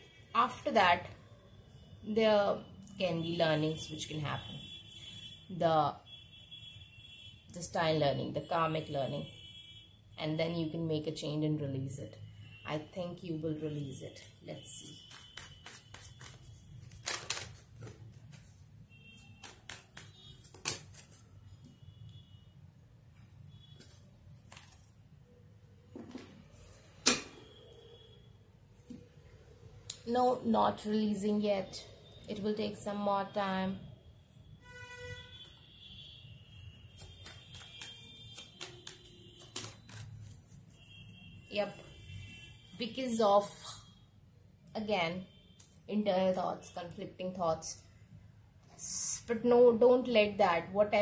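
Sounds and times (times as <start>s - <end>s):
cards being shuffled: 15.0s - 18.6s, 19.2s - 21.2s, 23.8s - 24.9s, 37.0s - 40.7s.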